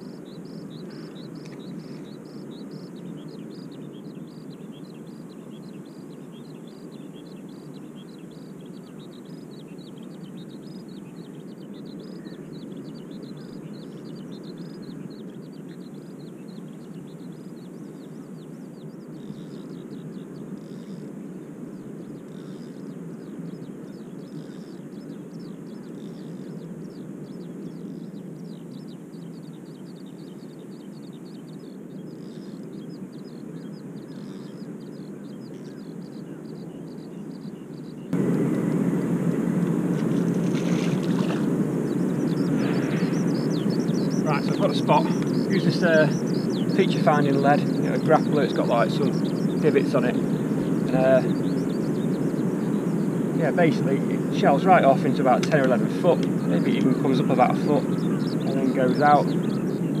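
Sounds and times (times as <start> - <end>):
low outdoor rumble: 38.0 - 60.0.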